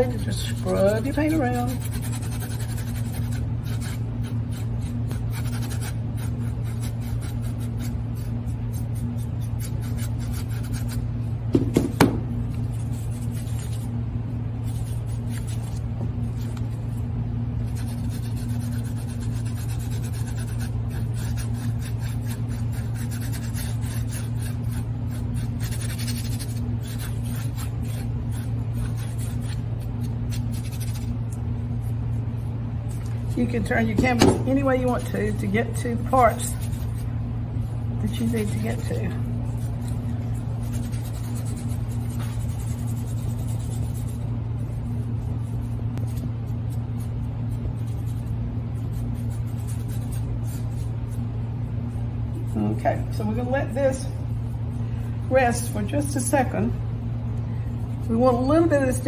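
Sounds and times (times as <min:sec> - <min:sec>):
paintbrush scrubbing canvas: 0:00.0 - 0:56.5
steady low hum: 0:00.0 - 0:59.0.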